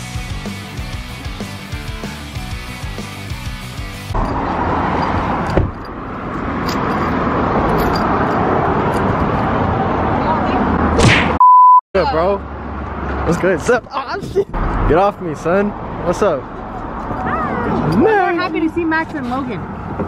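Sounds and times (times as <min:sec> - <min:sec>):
rock music with electric guitar: 0:00.0 - 0:04.2
voices outdoors: 0:09.8 - 0:11.0, 0:12.0 - 0:20.0
high censor bleep: 0:11.4 - 0:11.8.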